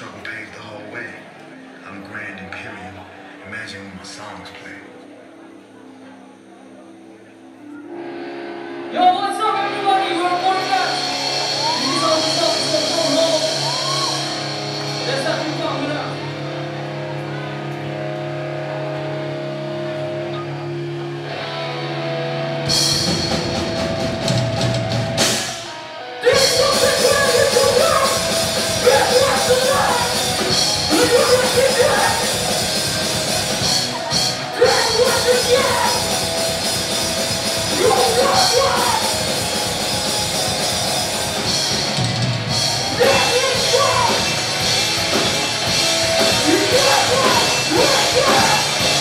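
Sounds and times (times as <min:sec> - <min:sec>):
sustained guitar chords droning: 0:04.9 - 0:49.0
heavy rock band playing live: 0:09.6 - 0:49.0
drums and cymbal hits: 0:10.3 - 0:16.4, 0:22.7 - 0:49.0.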